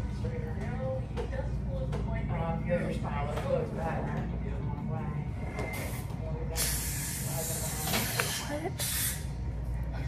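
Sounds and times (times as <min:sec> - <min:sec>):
low steady hum: 0:00.0 - 0:10.0
air spray hissing: 0:06.6 - 0:09.3.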